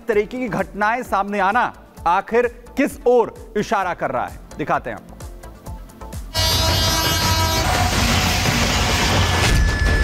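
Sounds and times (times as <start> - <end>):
news stinger horn chord and roar: 6.3 - 10.0.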